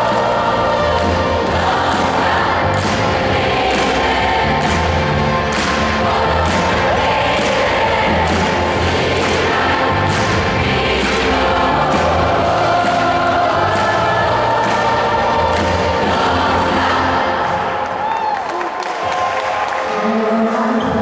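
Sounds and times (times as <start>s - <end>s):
amplified music with drum beat: 0.0s - 17.4s
youth choir singing: 0.0s - 18.2s.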